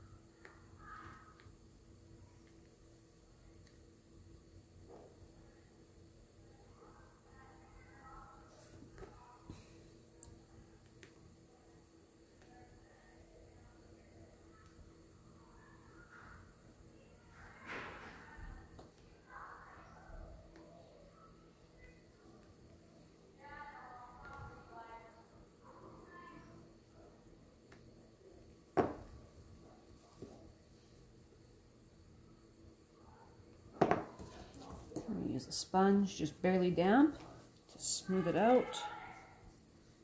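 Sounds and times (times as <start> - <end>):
knocks on worktable: 28.8 - 29.1, 33.8 - 34.2.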